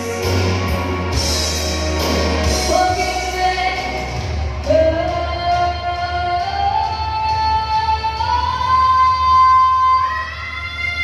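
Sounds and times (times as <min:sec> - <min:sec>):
rock ballad backing track: 0:00.0 - 0:08.9.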